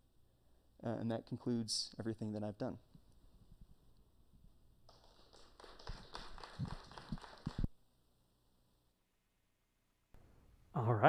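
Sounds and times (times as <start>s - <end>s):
small audience clapping: 4.9s - 7.7s.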